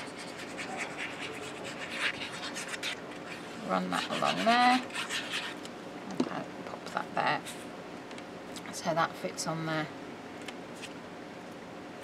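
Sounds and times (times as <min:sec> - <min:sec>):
glue bottle tip scratching paper: 0:00.0 - 0:05.6.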